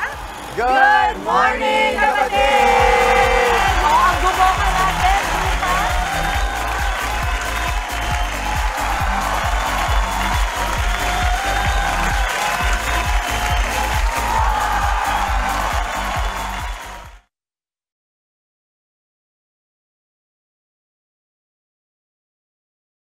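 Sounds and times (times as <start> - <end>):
theme music with steady beat: 0.0 - 17.2.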